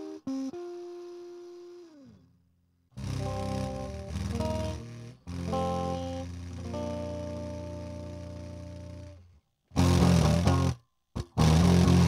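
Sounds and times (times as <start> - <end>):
faint amp hum: 0.0 - 12.0
distorted electric guitar note: 3.0 - 9.2, 9.8 - 12.0.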